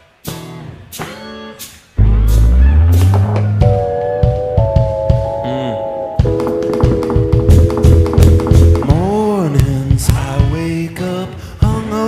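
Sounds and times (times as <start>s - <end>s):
indie rock band playing: 0.0s - 12.0s
swooping held guitar chord: 2.0s - 8.5s.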